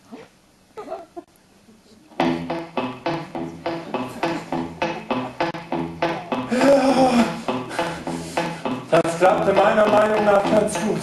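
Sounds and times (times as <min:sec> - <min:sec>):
guitar strumming chords: 0:02.2 - 0:11.0
upright bass: 0:02.2 - 0:11.0.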